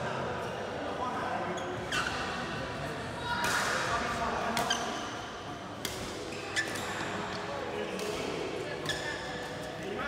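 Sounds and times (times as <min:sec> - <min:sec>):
murmur of voices: 0:00.0 - 0:10.0
rackets striking shuttlecock: 0:05.8 - 0:07.3, 0:07.9 - 0:09.2.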